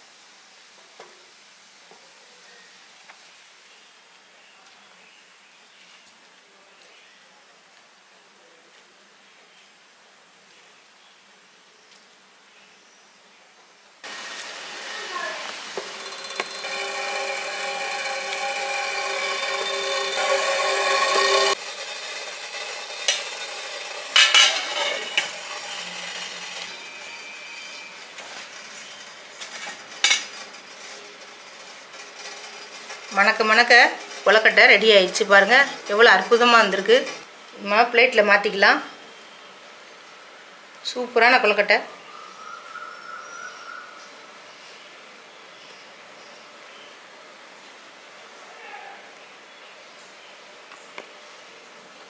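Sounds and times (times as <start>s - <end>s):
steamer hissing with whine: 14.0s - 37.3s.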